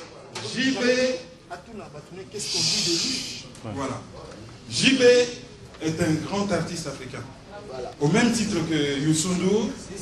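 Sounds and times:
faint room murmur: 0.0s - 10.0s
hissing breath into microphone: 2.4s - 3.5s.

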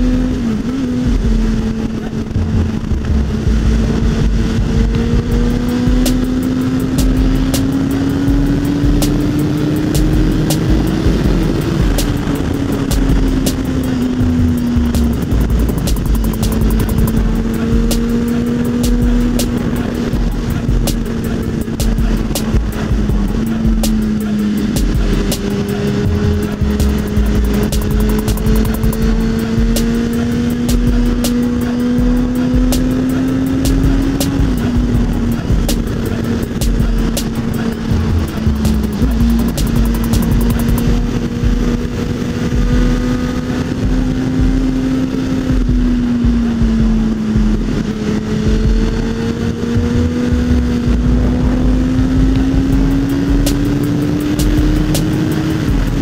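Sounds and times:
motorcycle engine cruising: 0.0s - 56.0s
music with pulsing bass beat: 1.0s - 1.7s, 2.3s - 41.8s, 42.5s - 43.1s, 43.8s - 44.7s, 45.5s - 47.8s, 48.4s - 49.2s, 49.8s - 56.0s.

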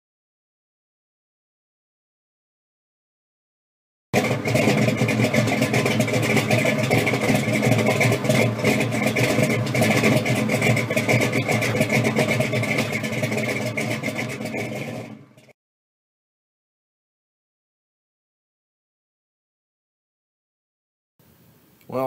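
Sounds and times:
car engine running: 4.2s - 15.6s.

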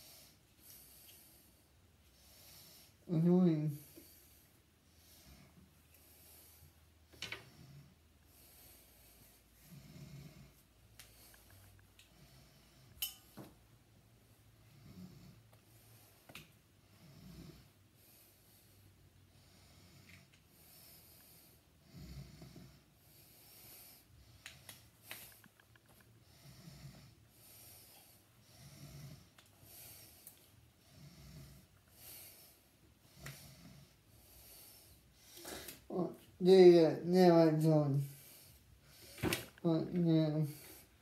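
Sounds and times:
faint slow breathing: 0.0s - 3.1s, 3.8s - 13.2s, 14.1s - 35.9s, 38.0s - 39.6s, 40.5s - 41.0s.

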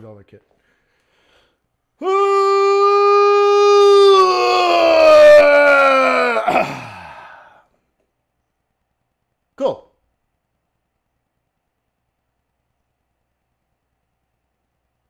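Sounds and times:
man yawning loudly: 2.0s - 7.6s.

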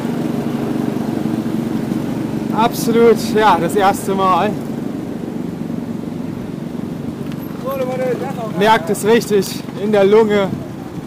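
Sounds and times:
car engine humming: 0.0s - 11.0s.

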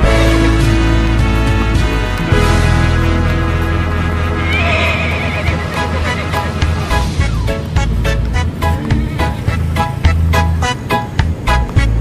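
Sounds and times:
background music: 0.0s - 12.0s
horse whinnying: 4.2s - 7.1s.

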